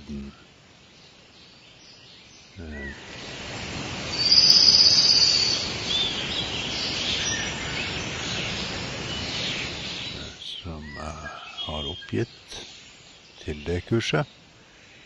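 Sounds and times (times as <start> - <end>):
bird trill: 1.4 - 3.1, 4.1 - 14.4
high bird chirps: 4.1 - 14.4.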